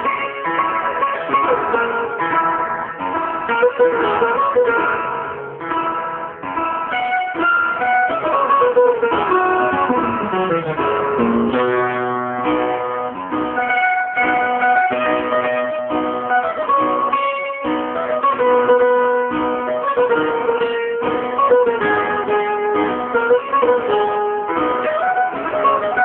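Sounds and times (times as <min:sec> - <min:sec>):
plucked guitar melody: 0:00.0 - 0:26.0
strummed guitar accompaniment: 0:00.0 - 0:26.0.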